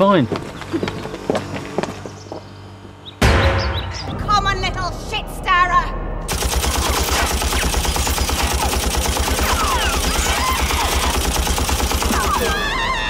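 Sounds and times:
submachine gun automatic fire: 0:06.3 - 0:12.8.

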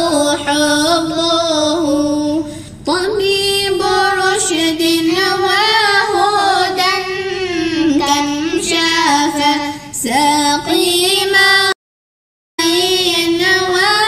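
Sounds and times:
high voice singing a chant: 0:00.0 - 0:11.8, 0:12.6 - 0:14.0.

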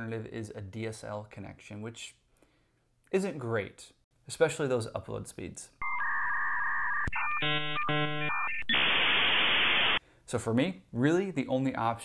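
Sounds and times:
dial-up modem handshake tones: 0:05.8 - 0:10.0
modem hiss: 0:06.0 - 0:10.0.

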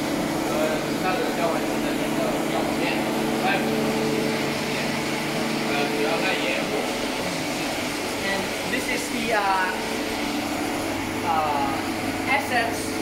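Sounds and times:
machinery hum with low tones: 0:00.0 - 0:13.0
people talking: 0:00.5 - 0:03.8, 0:05.6 - 0:06.9, 0:08.2 - 0:09.8, 0:11.3 - 0:13.0.

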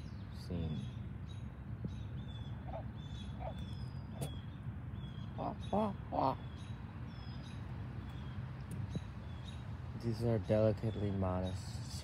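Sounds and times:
small birds chirping: 0:00.0 - 0:12.0
bird call: 0:00.7 - 0:08.4.

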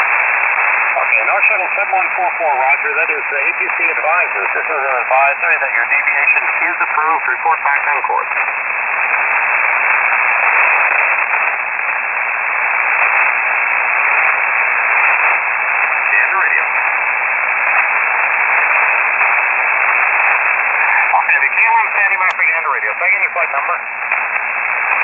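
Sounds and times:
radio static hiss: 0:00.0 - 0:25.0
faint radio voice: 0:01.0 - 0:08.5, 0:16.0 - 0:16.8, 0:20.7 - 0:24.1.

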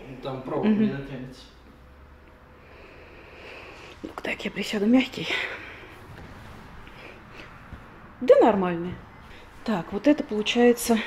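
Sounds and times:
steady low hum: 0:00.0 - 0:11.0
soft rustles: 0:05.3 - 0:08.0.

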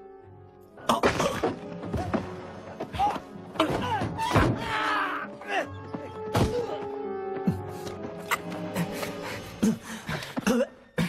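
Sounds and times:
film music score: 0:00.0 - 0:11.0.

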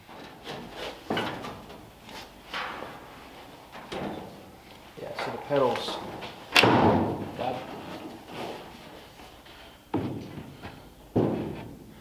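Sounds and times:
thumps and knocks on wooden seat: 0:11.2 - 0:11.8.

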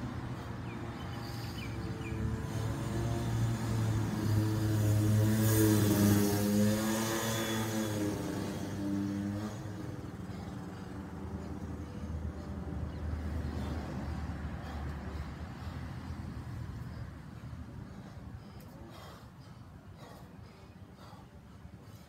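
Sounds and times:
vehicle driving past: 0:00.0 - 0:18.1
road noise rush: 0:00.0 - 0:22.0.

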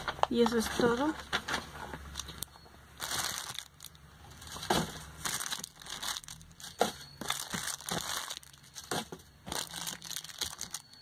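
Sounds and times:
packing material crinkling: 0:02.0 - 0:11.0.

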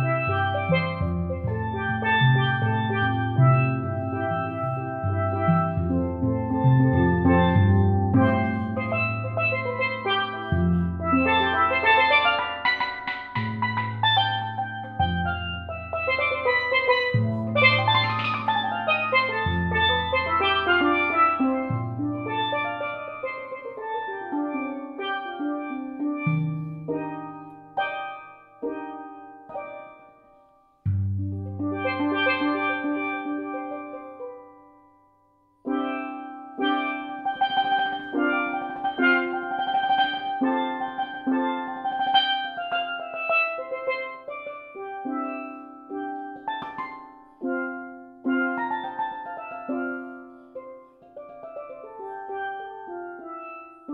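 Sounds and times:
steelpan improvisation: 0:00.0 - 0:53.9.

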